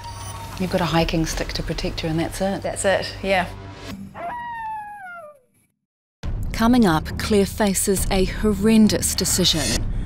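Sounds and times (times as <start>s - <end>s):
coyote howl: 4.2s - 5.4s.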